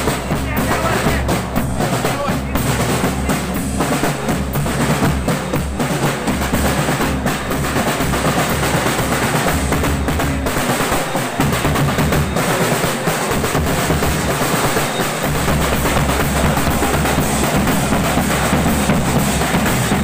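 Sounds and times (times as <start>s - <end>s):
deep bass drum: 0.0s - 12.6s, 13.3s - 20.0s
snare drums: 0.0s - 20.0s.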